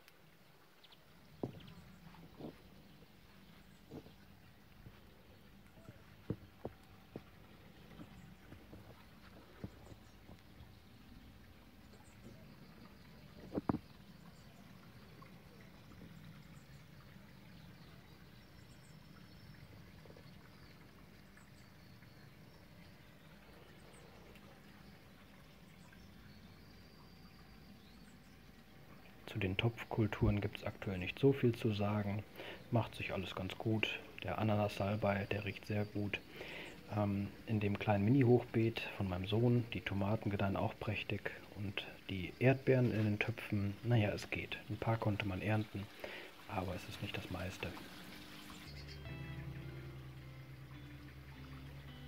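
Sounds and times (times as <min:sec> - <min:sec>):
faint outdoor background sound: 0:00.0 - 0:52.0
soft clicks and knocks: 0:13.4 - 0:13.9.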